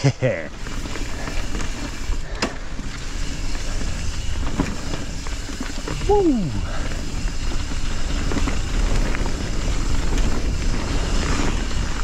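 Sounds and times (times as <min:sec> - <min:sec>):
bike clicks and rattles: 0:00.1 - 0:12.0
tyres rolling on dirt: 0:00.2 - 0:12.0.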